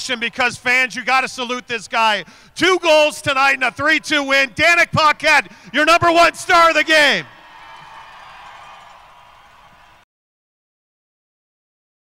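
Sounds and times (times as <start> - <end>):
arena crowd cheering: 3.0 - 10.0.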